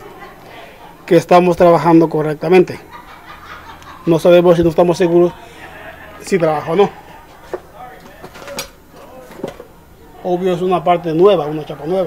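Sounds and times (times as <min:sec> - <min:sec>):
faint murmur of voice: 0:00.0 - 0:01.1.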